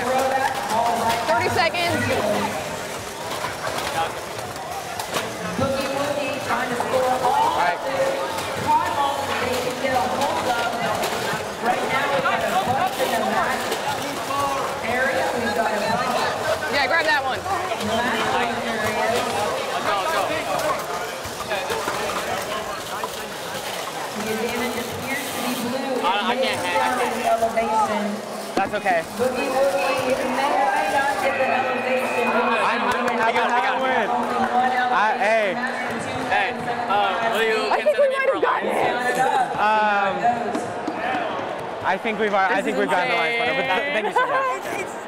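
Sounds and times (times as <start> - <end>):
crowd chatter: 0.0 - 45.0.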